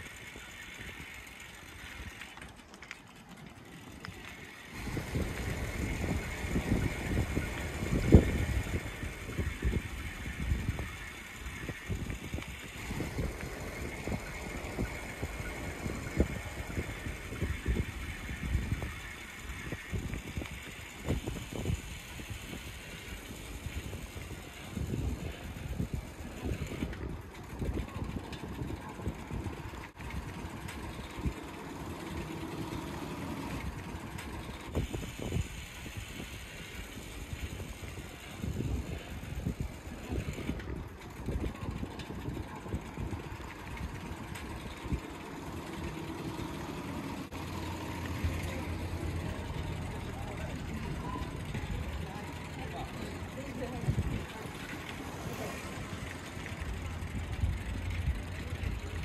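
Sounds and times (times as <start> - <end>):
motor vehicle engine running: 0.0 - 59.0
people talking: 22.9 - 34.6, 37.4 - 59.0.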